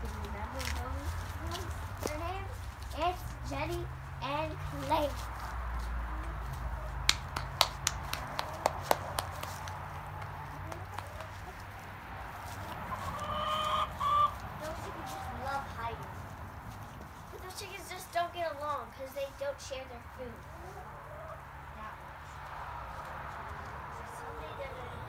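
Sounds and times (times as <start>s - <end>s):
hens clucking: 8.1s - 16.0s, 20.3s - 23.2s
drawn-out hen call: 9.6s - 15.6s.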